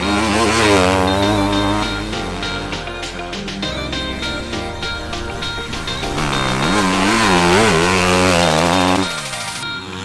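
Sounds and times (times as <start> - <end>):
motorcycle engine revving: 0.0 - 10.0
music: 0.0 - 10.0.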